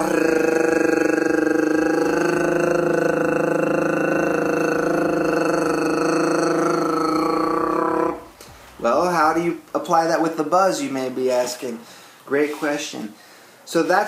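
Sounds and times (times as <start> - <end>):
man rolling his r: 0.0 - 8.4.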